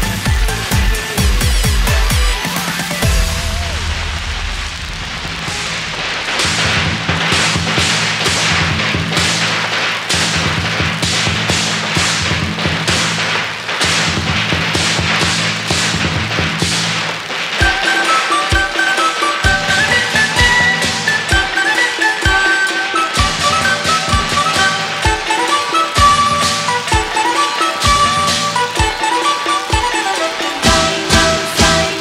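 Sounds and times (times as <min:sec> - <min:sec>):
firecrackers cracking: 0:00.0 - 0:32.0.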